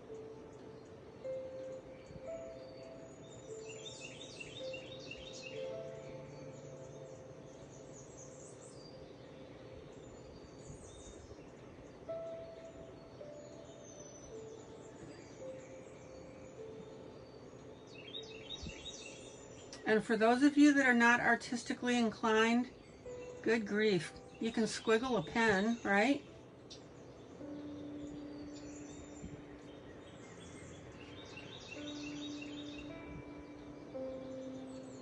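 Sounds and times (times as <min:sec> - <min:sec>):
high bird chirping: 0:00.0 - 0:35.0
soft background music: 0:00.0 - 0:35.0.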